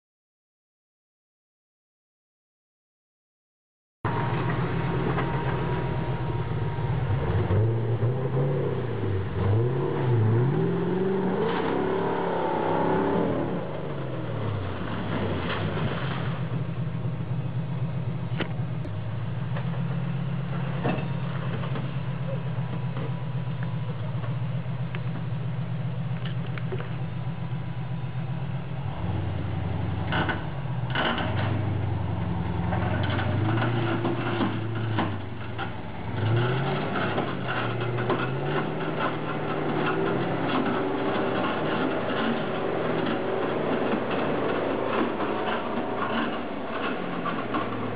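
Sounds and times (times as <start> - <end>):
off-road vehicle engine revving: 4.1 - 47.9.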